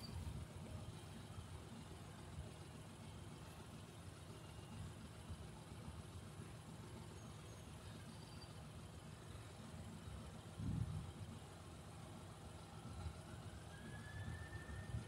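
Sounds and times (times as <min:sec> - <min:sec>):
faint rising whine: 0:06.8 - 0:15.0.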